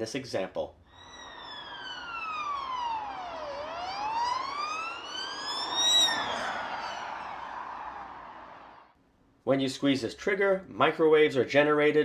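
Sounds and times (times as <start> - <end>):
emergency vehicle siren wailing: 0.9 - 8.9.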